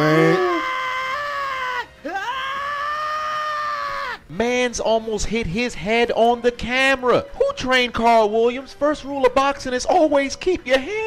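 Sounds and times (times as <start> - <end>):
high-pitched wailing voice: 0.0 - 0.8.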